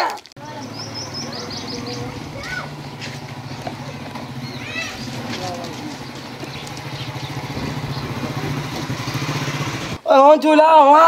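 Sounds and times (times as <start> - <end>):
small motorcycle engine running: 0.4 - 10.0.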